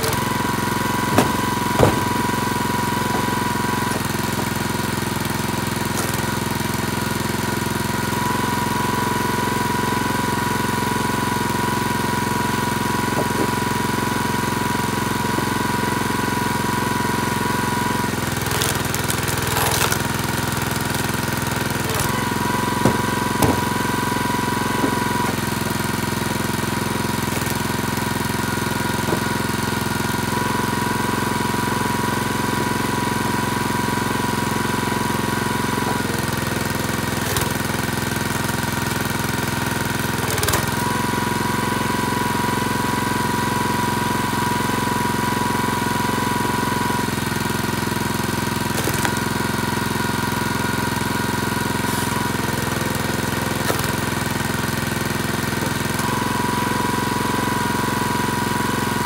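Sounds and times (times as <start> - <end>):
wood cracking and knocking: 0.0 - 4.6, 13.0 - 13.9, 18.4 - 30.0
small gas engine running: 0.0 - 59.0.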